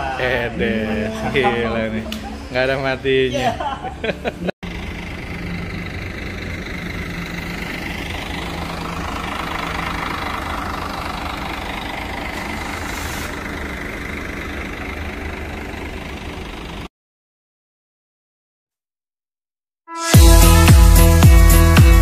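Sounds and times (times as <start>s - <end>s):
diesel bus engine humming: 0.0s - 16.9s, 20.2s - 22.0s.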